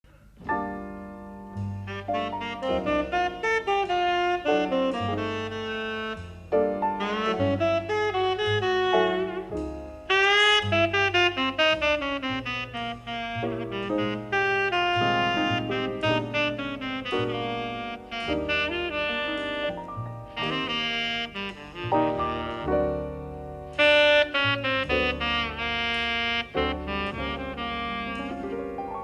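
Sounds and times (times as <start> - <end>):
double bass: 0.0 - 29.0
piano: 0.0 - 29.0
tenor saxophone melody: 1.6 - 29.0.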